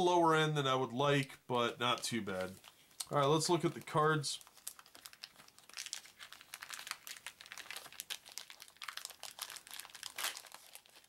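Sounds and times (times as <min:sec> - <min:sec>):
plastic wrap crinkling: 0:01.8 - 0:11.0.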